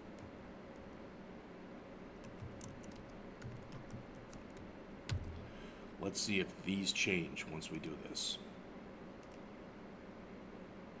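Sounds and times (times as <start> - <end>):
computer keyboard typing: 2.2 - 5.4.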